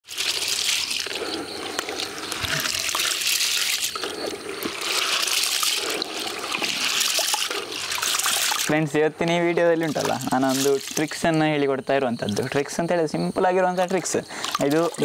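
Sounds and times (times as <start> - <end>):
hands rubbing grain in water: 0.0 - 11.3, 14.4 - 15.0
water sloshing in a bucket: 0.0 - 12.8, 13.8 - 15.0.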